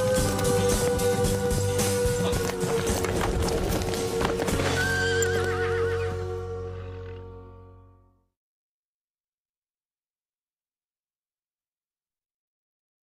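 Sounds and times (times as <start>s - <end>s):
horse hoofbeats: 0.0s - 7.3s
horse whinnying: 4.2s - 7.3s.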